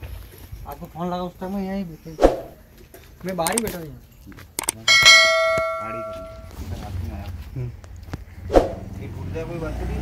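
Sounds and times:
mouse clicks: 0:03.4 - 0:03.7
bell ringing: 0:04.6 - 0:06.5.

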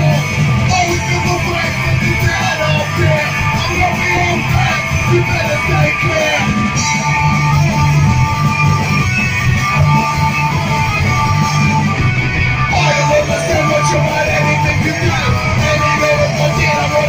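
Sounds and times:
drums: 0:00.0 - 0:17.0
electric guitar: 0:00.0 - 0:17.0.

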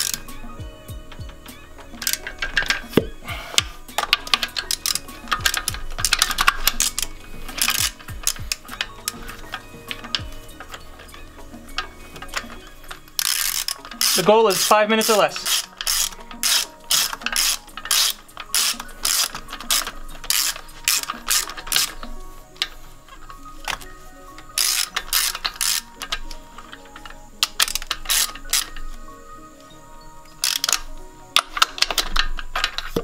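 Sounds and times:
socket ratchet clicking: 0:00.0 - 0:33.0.

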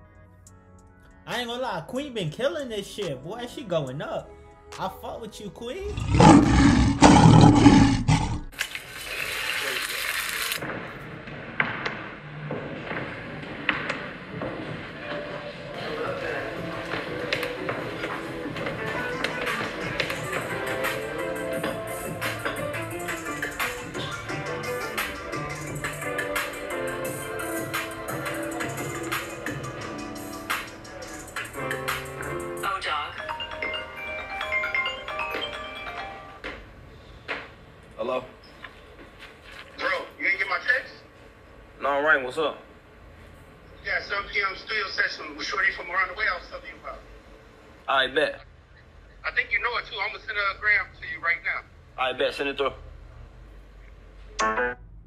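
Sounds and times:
loud roar: 0:05.8 - 0:08.5
phone ringtone chiming: 0:33.2 - 0:36.4.

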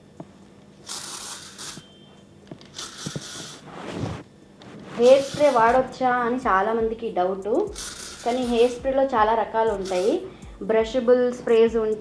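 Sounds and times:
hair spray hissing: 0:00.9 - 0:01.8, 0:02.7 - 0:04.2, 0:05.0 - 0:05.9, 0:07.7 - 0:08.9, 0:09.8 - 0:10.3.

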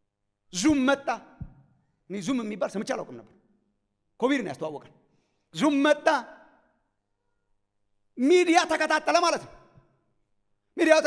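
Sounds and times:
man speaking amplified: 0:00.5 - 0:03.4, 0:04.2 - 0:06.6, 0:08.2 - 0:09.8, 0:10.8 - 0:11.0.

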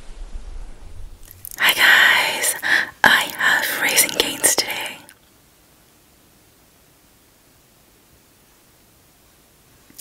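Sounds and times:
woman whispering: 0:01.5 - 0:05.2.

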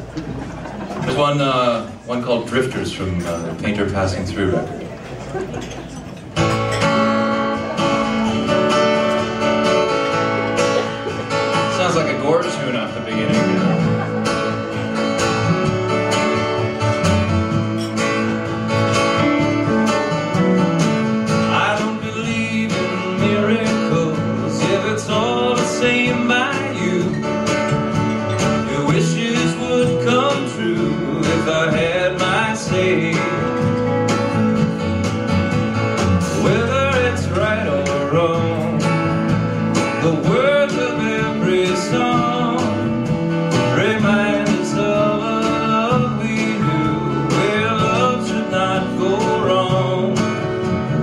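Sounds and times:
drums: 0:00.0 - 0:51.0
strummed acoustic guitar: 0:00.0 - 0:51.0
electric guitar: 0:04.7 - 0:51.0.

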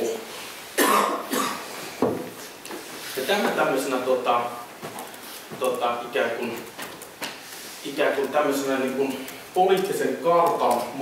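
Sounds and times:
person coughing: 0:00.8 - 0:01.7.

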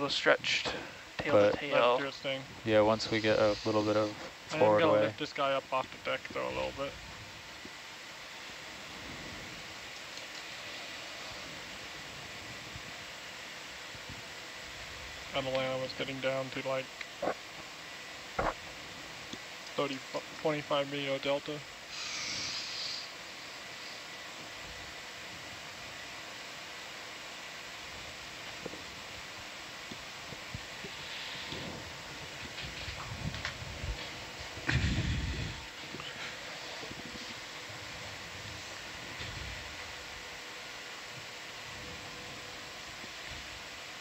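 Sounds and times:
background hiss: 0:00.0 - 0:44.0
faint constant hum: 0:00.0 - 0:44.0.

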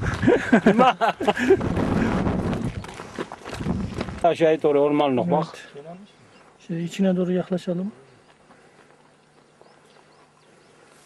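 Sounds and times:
footsteps on a path: 0:00.0 - 0:04.8, 0:08.0 - 0:11.0.

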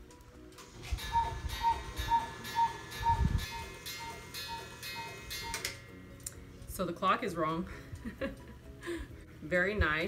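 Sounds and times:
wall clock chiming: 0:01.0 - 0:06.0.

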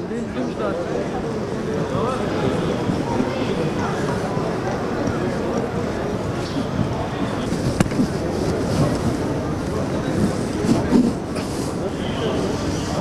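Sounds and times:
rumble of street movement: 0:00.0 - 0:13.0.

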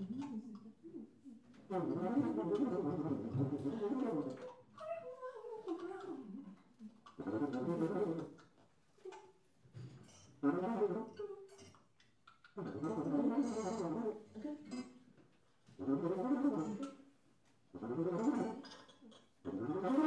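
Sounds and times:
tuba: 0:01.0 - 0:04.7, 0:06.0 - 0:09.1, 0:10.1 - 0:15.0, 0:15.6 - 0:20.0.

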